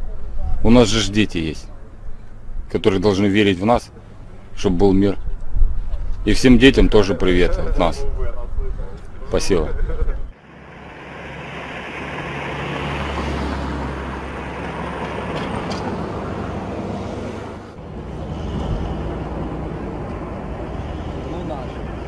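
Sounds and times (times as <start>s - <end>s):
heavy vehicle engines droning: 0.0s - 22.0s
road noise: 0.0s - 22.0s.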